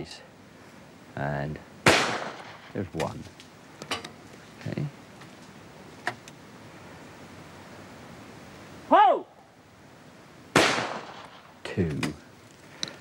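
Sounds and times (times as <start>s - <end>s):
loud shotgun shot with echo: 1.8s - 2.8s, 10.5s - 11.5s
person shouting: 8.9s - 9.4s.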